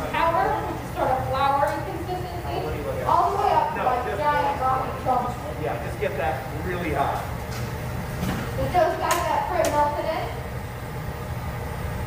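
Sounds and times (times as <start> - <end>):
furnace and torch rumble: 0.0 - 12.0.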